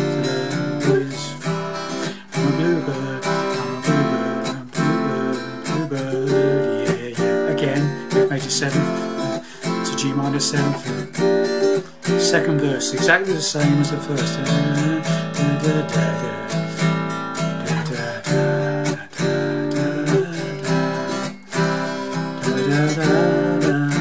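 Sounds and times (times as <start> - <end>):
acoustic guitar strumming: 0.0 - 24.0.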